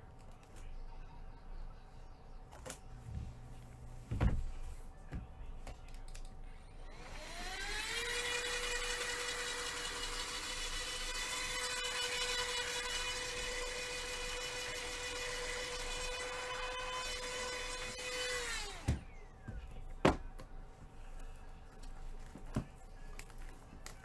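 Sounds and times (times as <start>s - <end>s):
small electric motor whirring: 6.9s - 18.9s.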